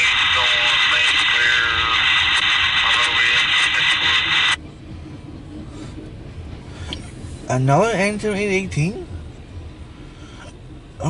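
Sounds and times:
garbled radio voice: 0.0s - 4.6s
radio static hiss: 0.0s - 4.6s
freight train rumble: 0.0s - 11.0s.

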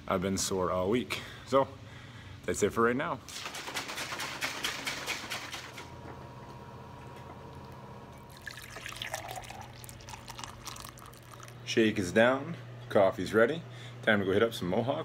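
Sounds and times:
coffee pouring into a mug: 8.3s - 11.6s.

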